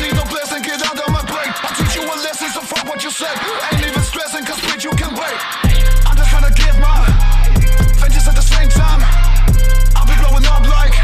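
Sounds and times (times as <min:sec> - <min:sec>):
rapping over a beat: 0:00.0 - 0:11.0
descending bass slides: 0:05.6 - 0:11.0
sustained deep bass: 0:05.7 - 0:11.0.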